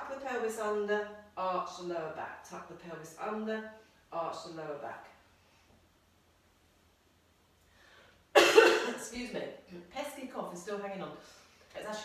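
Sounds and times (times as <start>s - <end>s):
woman coughing: 8.4s - 9.1s.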